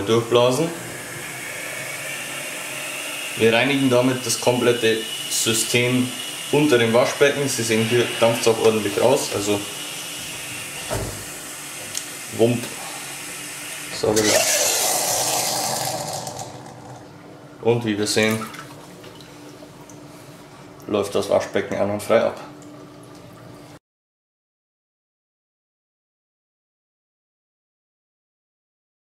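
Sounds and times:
rough steam noise in drain: 0.5 - 11.4
steam cleaner hissing: 0.5 - 11.5.

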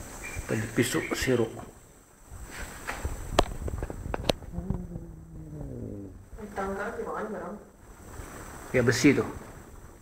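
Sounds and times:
person's long held voice: 4.5 - 6.3.

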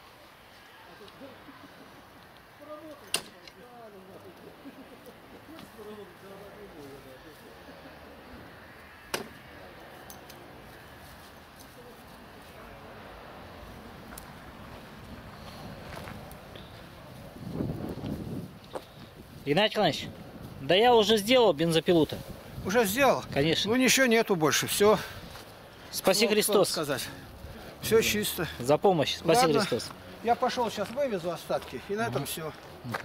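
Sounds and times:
rustling of dry grass and leaves: 0.0 - 33.0.

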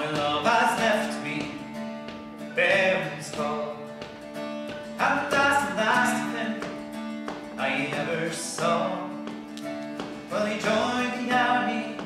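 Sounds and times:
acoustic guitar accompaniment: 0.0 - 12.0.

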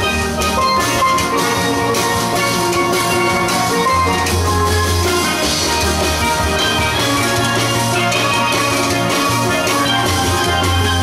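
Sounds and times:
steel band playing: 0.0 - 11.0.

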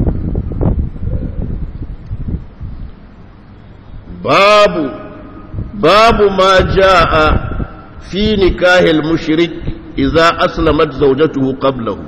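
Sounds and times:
low rumbling microphone noise: 0.0 - 12.0.

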